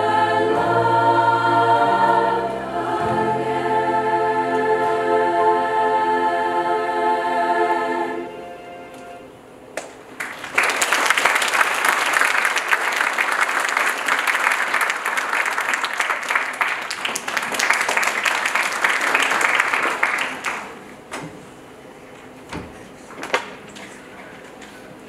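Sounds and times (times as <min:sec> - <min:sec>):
girls' choir holding chord: 0:00.0 - 0:09.5
audience applause: 0:10.2 - 0:20.9.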